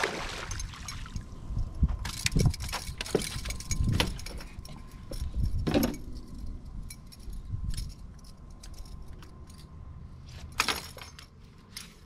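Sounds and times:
fishing gear clinking on metal: 0:00.4 - 0:12.0.

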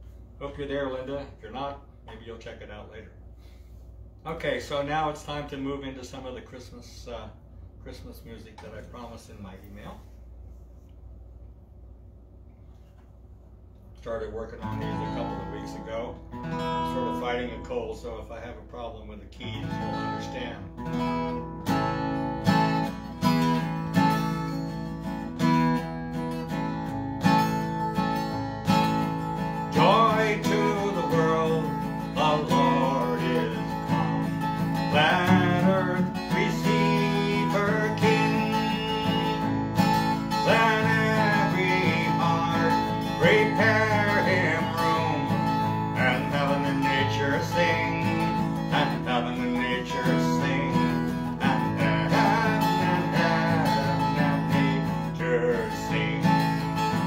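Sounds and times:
acoustic guitar strumming: 0:14.6 - 0:18.4, 0:19.4 - 0:57.0
man singing: 0:29.7 - 0:34.2, 0:34.8 - 0:39.5, 0:40.3 - 0:57.0.

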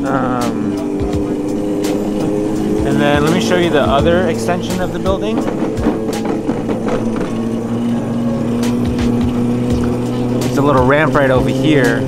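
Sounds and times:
background music with steady beat: 0:00.0 - 0:12.0
go-kart motor whining: 0:00.0 - 0:12.0.

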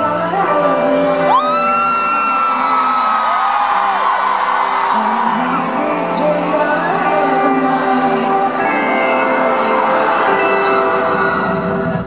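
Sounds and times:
live pop-rock band music: 0:00.0 - 0:12.0.

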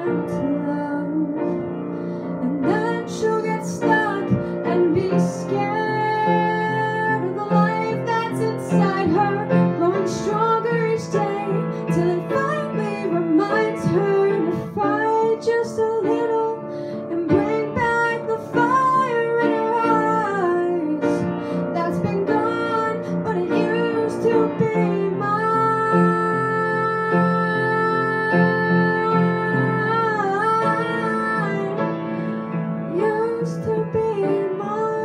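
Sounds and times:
girl singing a ballad: 0:00.0 - 0:35.0
piano chords: 0:00.0 - 0:35.0.

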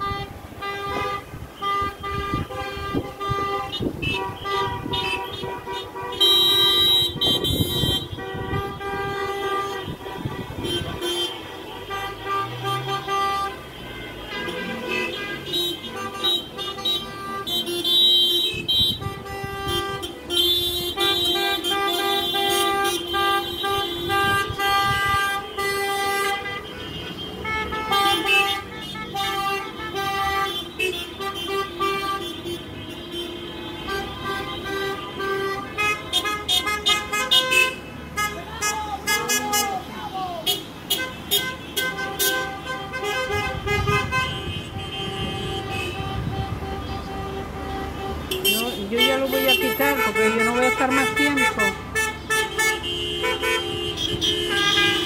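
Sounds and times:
car horns overlapping: 0:00.0 - 0:55.0
low rumble of traffic: 0:00.0 - 0:55.0.

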